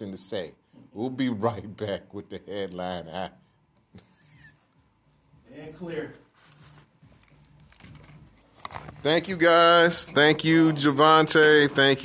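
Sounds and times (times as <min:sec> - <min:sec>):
man speaking: 0:09.0 - 0:12.0.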